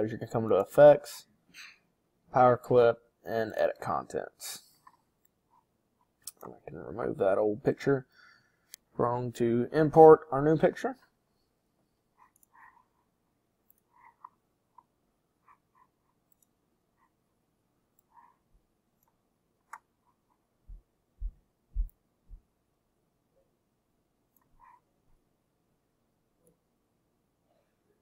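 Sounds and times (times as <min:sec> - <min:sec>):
computer mouse clicks: 0:12.2 - 0:12.7, 0:16.3 - 0:16.6, 0:19.0 - 0:19.9
soft low thumps: 0:20.6 - 0:22.5.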